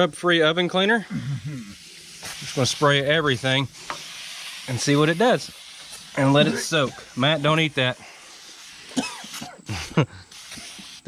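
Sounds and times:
aerosol can spraying: 1.4s - 11.0s
cough-like vocal outburst: 6.4s - 7.0s, 8.9s - 10.0s.

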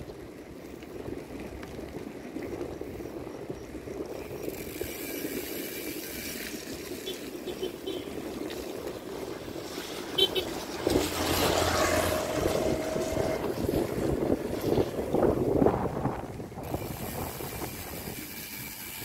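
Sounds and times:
bicycle tyres rolling on wet pavement: 0.0s - 19.0s
wind on microphone: 0.0s - 19.0s.

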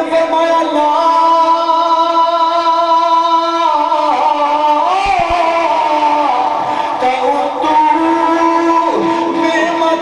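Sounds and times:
man singing through microphone: 0.0s - 10.0s.

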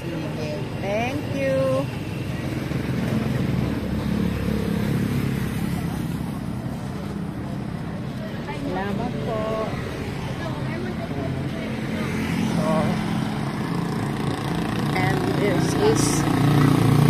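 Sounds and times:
voices: 0.0s - 3.9s, 5.3s - 17.0s
motorcycle engine running: 10.7s - 17.0s.

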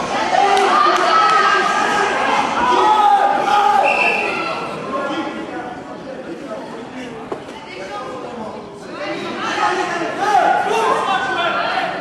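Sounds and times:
spectators shouting in echoing hall: 0.0s - 5.6s, 8.9s - 12.0s.

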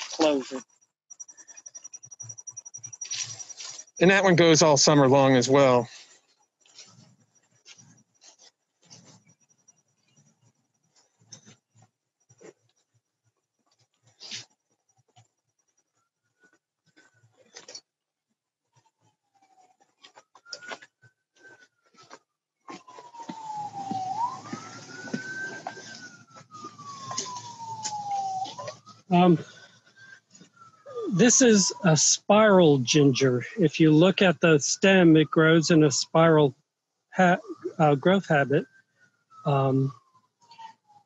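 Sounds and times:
emergency vehicle siren wailing: 0.0s - 0.6s, 1.2s - 6.1s, 6.7s - 11.6s, 18.7s - 36.6s, 37.2s - 41.0s.

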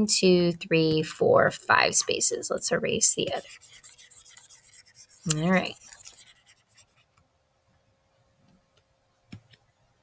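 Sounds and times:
scratching of drawing on a screen: 2.1s - 7.3s.

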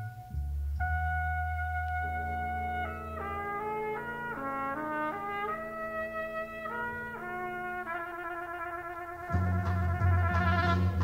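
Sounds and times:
concert band playing: 0.0s - 11.0s
solo trumpet melody: 0.0s - 11.0s.

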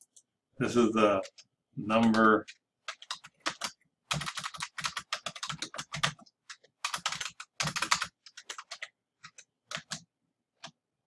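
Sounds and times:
typing on computer keyboard: 1.2s - 10.8s.

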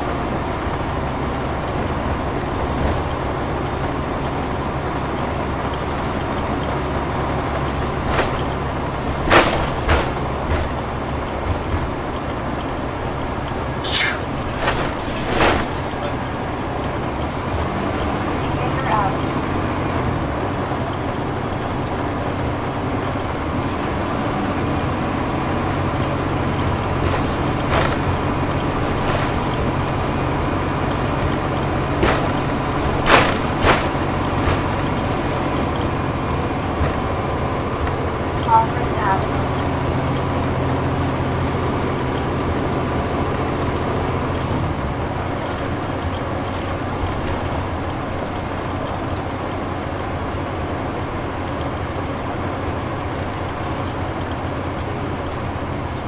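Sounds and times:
bus diesel engine running: 0.0s - 56.0s
road and tyre noise: 0.0s - 56.0s.

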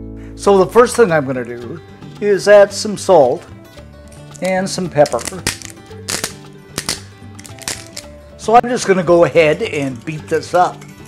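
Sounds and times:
background music: 0.0s - 11.0s
pepper mill grinding: 4.1s - 8.1s.

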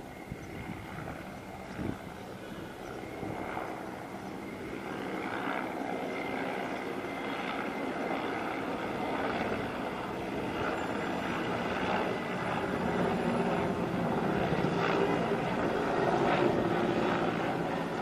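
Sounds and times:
helicopter flying past: 0.0s - 18.0s.

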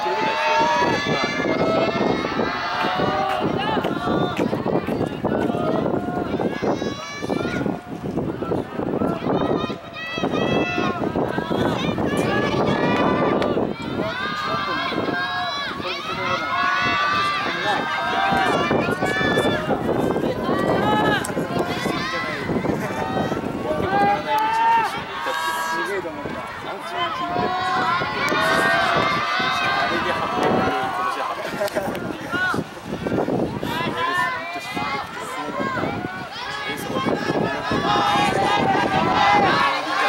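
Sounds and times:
voices shouting encouragement: 0.0s - 40.0s.

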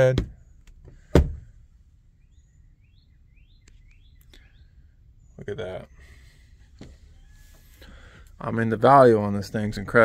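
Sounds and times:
faint birds chirping: 0.0s - 10.0s.

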